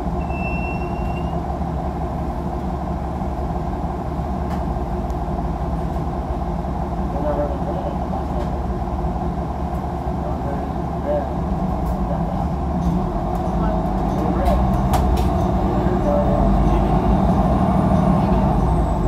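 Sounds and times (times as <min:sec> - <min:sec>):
bus engine drone: 0:00.0 - 0:19.0
short high beep: 0:00.2 - 0:01.4.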